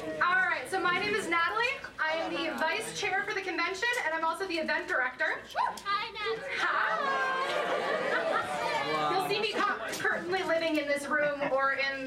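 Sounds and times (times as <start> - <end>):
overlapping voices: 5.7 - 10.1
woman talking into a microphone: 9.0 - 12.0.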